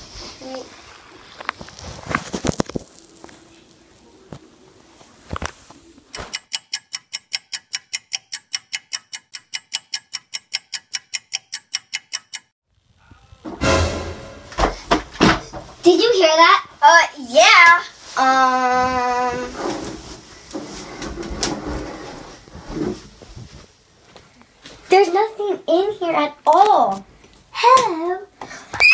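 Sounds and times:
clock ticking: 6.1 - 12.5
loud noise: 13.4 - 15.3.

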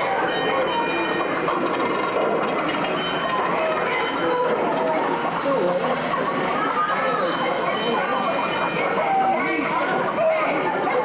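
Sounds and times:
city traffic: 0.0 - 11.0
streetcar clattering on rails: 0.0 - 11.0.

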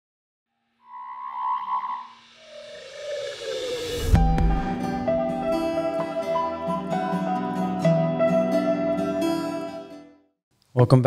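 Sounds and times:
shimmering synthesized tone: 0.8 - 5.8.

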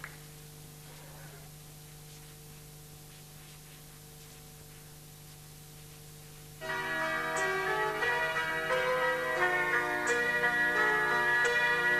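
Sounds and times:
low steady hum: 0.0 - 11.9
bell-like chiming jingle: 6.6 - 11.9.

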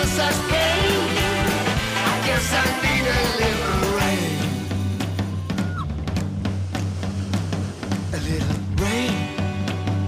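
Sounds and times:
bass guitar: 0.0 - 10.0
drum kit beat: 0.0 - 10.0.

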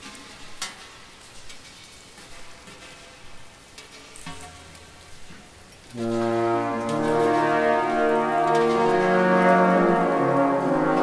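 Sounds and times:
water dripping in a cave: 0.0 - 11.0.

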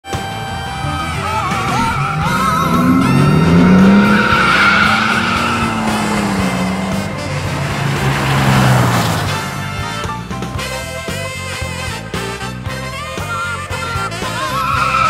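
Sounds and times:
engines revving hard: 0.1 - 15.0
tires squealing: 0.1 - 15.0.

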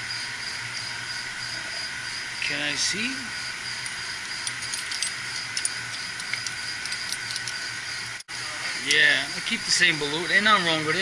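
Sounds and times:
machinery hum: 0.0 - 11.0
metallic clicks and rattles: 3.8 - 7.6.

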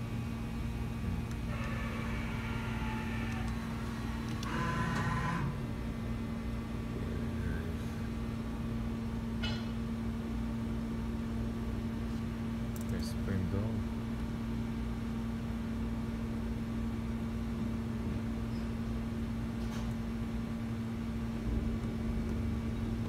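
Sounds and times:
machining center humming: 0.0 - 23.0.

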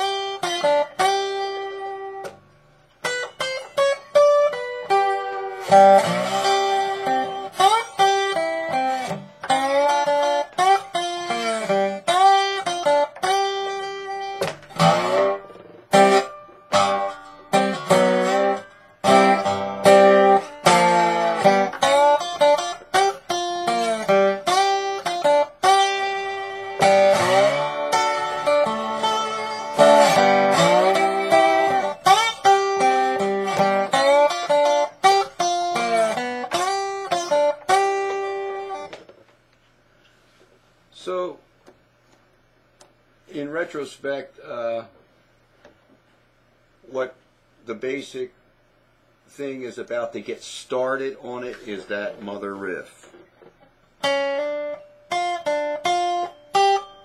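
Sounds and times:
slide guitar blues riff: 0.0 - 39.2, 49.9 - 57.0.

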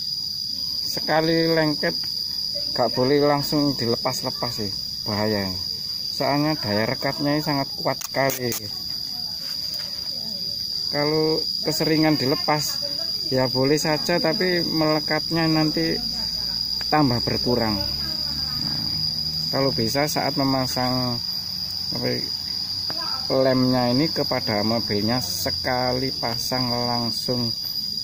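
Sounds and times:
high-pitched insect drone: 0.0 - 28.0
sharp click: 8.0 - 8.7.

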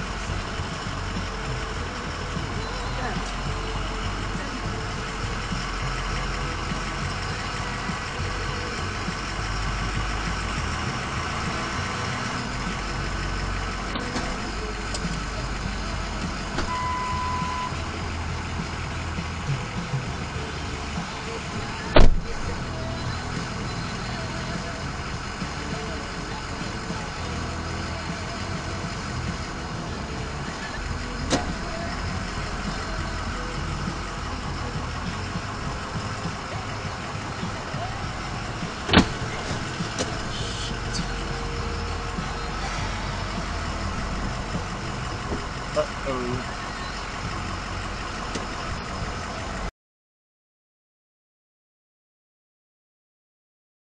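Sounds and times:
engine idling: 0.0 - 49.7
short beep: 16.6 - 17.8
sharp knock: 22.0 - 22.3.

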